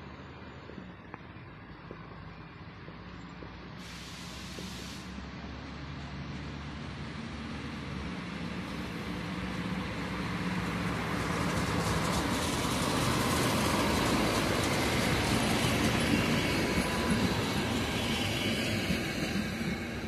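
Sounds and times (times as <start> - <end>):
diesel engine drone: 0.0 - 20.0
train wheels on rails: 0.0 - 20.0.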